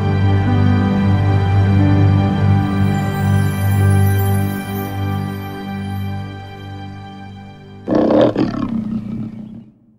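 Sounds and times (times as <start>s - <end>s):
soft music with held notes: 0.0s - 8.3s
big cat roaring: 7.8s - 9.8s.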